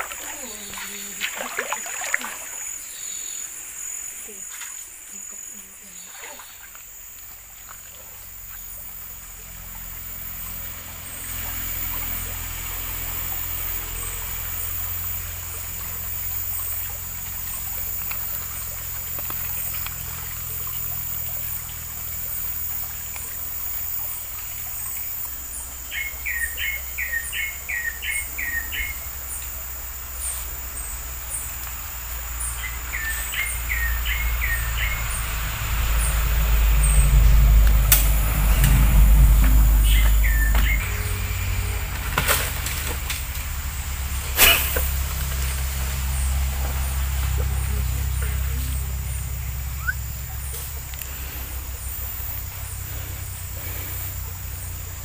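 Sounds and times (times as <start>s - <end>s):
bird calling: 0.0s - 6.8s, 25.9s - 29.4s, 32.4s - 35.3s, 38.6s - 41.4s, 47.3s - 54.8s
faint ticks: 31.4s - 31.8s, 50.5s - 51.2s
high whine: 33.6s - 53.2s
low rumble: 33.6s - 55.0s.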